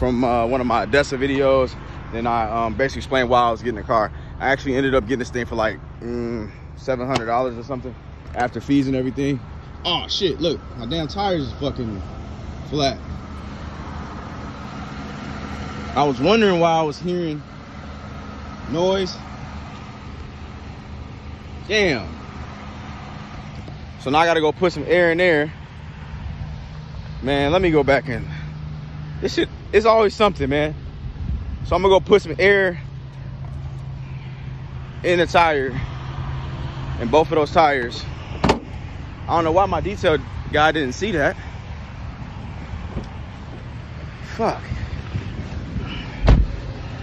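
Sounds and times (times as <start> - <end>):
low road traffic noise: 0.0 - 47.0
motor vehicle hum: 0.0 - 47.0
wind rumbling on microphone: 31.1 - 31.9, 44.6 - 47.0.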